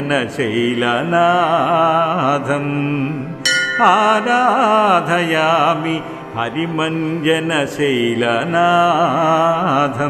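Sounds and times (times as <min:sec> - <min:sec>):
bell ringing: 0:03.5 - 0:05.7
person chanting melody: 0:03.5 - 0:07.4.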